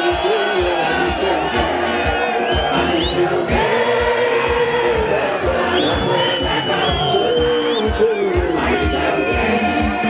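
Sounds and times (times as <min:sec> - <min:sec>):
crowd singing and chanting: 0:00.0 - 0:10.0
music with steady drum beat: 0:00.0 - 0:10.0.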